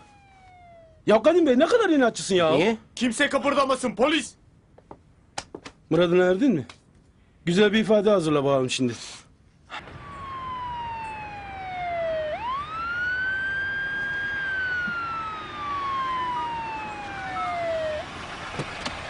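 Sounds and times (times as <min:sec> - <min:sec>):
police siren wailing: 0:00.0 - 0:01.3, 0:09.7 - 0:18.5.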